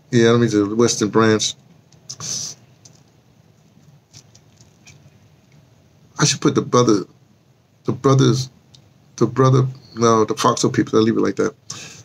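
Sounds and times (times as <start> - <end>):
faint low hum: 0.0 - 12.0
soft clicks: 2.8 - 5.6.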